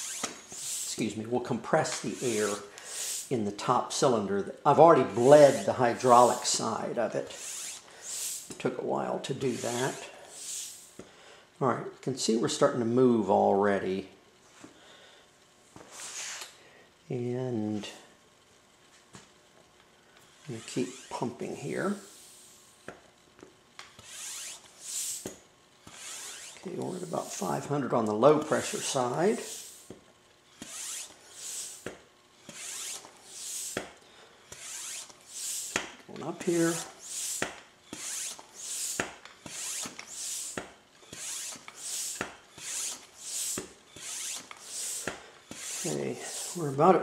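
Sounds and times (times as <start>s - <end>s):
hand pump air hissing: 0.0s - 1.1s, 1.8s - 3.4s, 5.0s - 8.6s, 9.4s - 11.0s, 15.9s - 16.5s, 20.4s - 22.6s, 23.9s - 27.7s, 28.4s - 46.8s.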